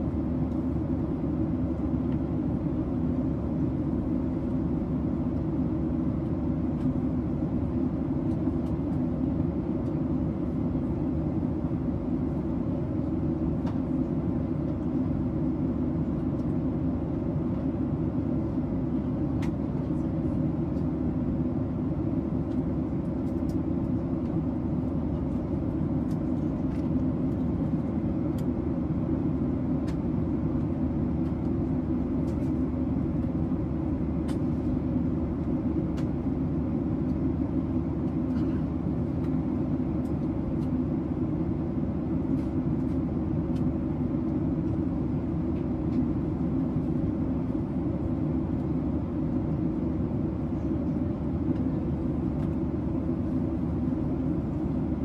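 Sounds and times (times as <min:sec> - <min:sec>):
airliner cabin engine rumble: 0:00.0 - 0:55.0.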